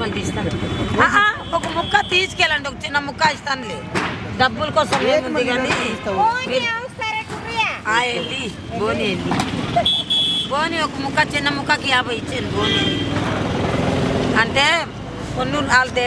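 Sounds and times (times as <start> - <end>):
market voices talking: 0.0 - 16.0.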